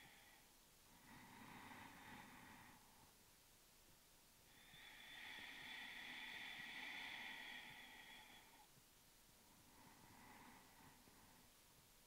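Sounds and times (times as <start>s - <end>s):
person breathing slowly: 0.0s - 3.4s, 4.4s - 12.0s.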